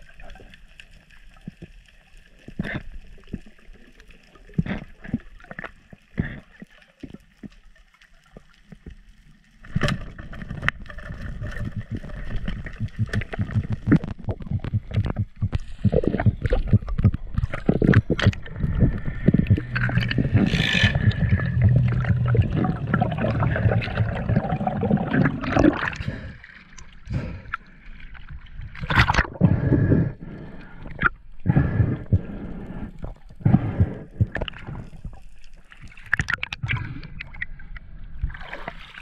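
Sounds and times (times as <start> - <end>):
muffled water rush: 0.0 - 39.0
underwater knocks and clicks: 8.3 - 27.3, 33.0 - 35.2, 35.9 - 37.5
low steady hum: 10.4 - 28.0.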